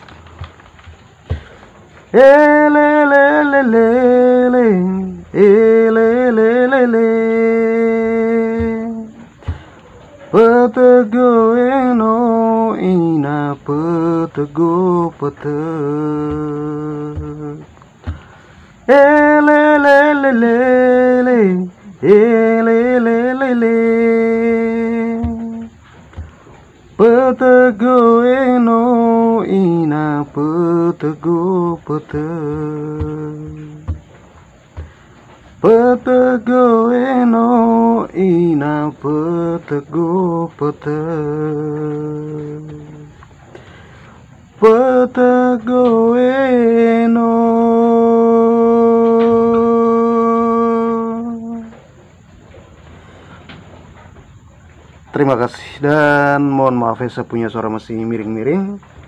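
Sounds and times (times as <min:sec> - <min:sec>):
faint breath: 0:09.4 - 0:10.3, 0:18.1 - 0:18.8, 0:43.5 - 0:44.2, 0:52.8 - 0:53.8.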